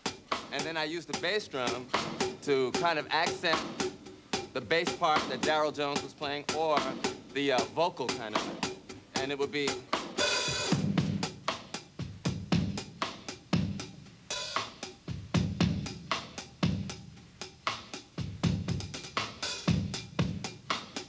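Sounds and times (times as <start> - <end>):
drum kit groove: 0.0 - 21.0.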